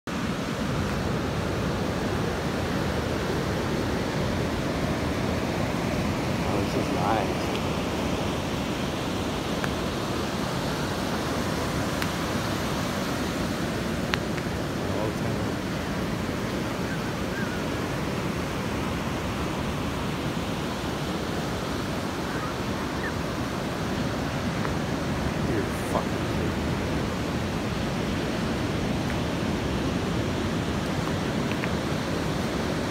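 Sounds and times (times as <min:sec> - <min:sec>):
ocean surf breaking on beach: 0:00.1 - 0:32.9.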